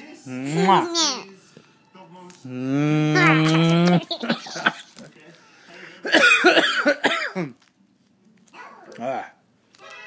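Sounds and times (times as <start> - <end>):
person coughing: 6.0 - 7.6.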